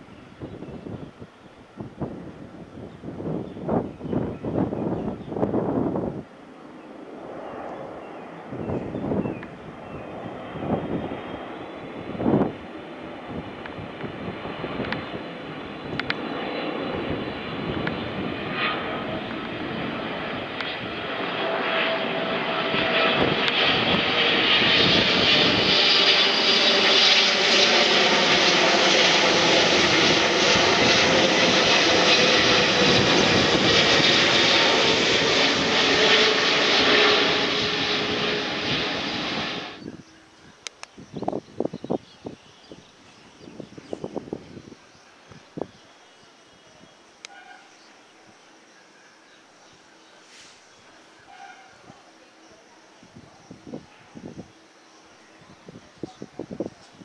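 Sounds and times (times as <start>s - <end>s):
jet engines roaring overhead: 0.0s - 57.0s.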